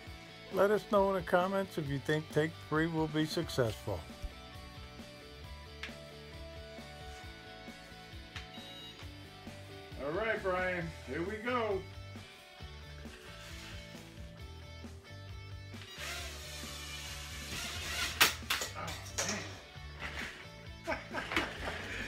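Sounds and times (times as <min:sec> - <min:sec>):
background music with bass line: 0:00.0 - 0:22.0.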